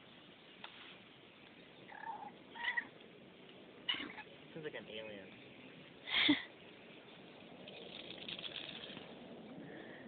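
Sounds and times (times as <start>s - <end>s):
rustling in grass: 0.0s - 9.4s.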